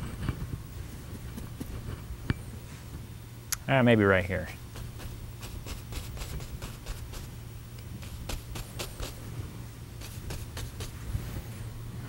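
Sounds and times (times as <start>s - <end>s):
steady low hum: 0.0s - 12.0s
paint brush strokes on canvas: 4.6s - 12.0s.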